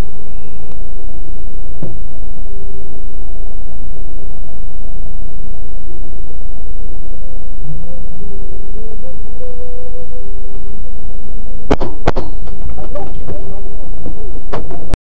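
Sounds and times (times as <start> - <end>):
brief falling tone: 6.8 - 10.9.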